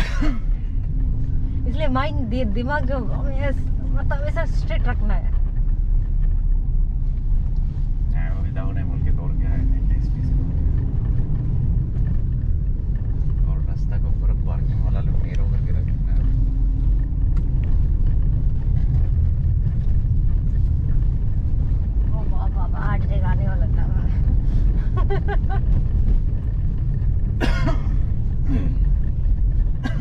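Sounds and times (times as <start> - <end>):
car engine and tyre rumble: 0.0 - 30.0.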